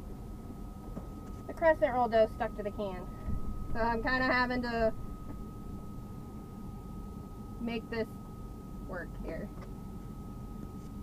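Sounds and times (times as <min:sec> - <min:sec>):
low background rumble: 0:01.6 - 0:10.7.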